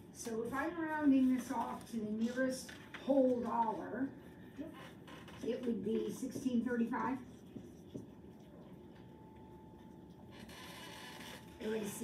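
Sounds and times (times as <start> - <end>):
marker writing on whiteboard: 0.3 - 8.7.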